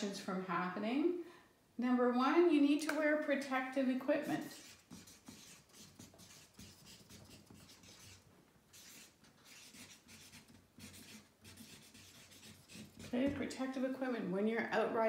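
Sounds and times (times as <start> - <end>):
marker pen scratching on paper: 4.2 - 13.4.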